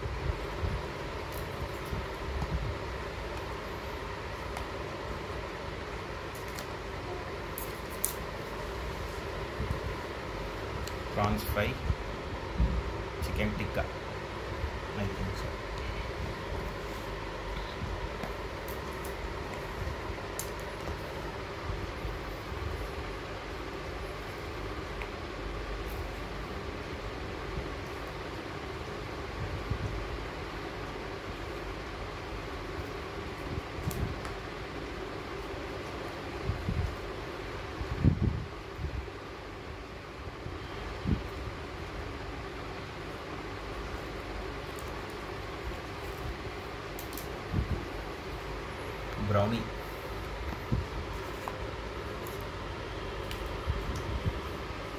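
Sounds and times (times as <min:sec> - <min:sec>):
steady mechanical hum: 0:00.0 - 0:54.9.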